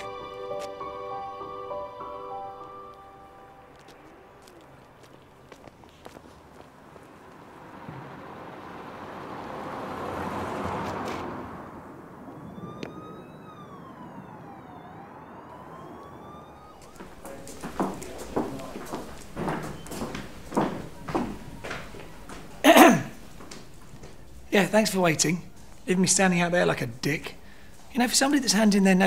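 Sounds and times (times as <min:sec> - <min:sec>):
faint siren wailing: 0:00.0 - 0:06.2, 0:06.8 - 0:22.3
rushing street noise: 0:00.0 - 0:29.0.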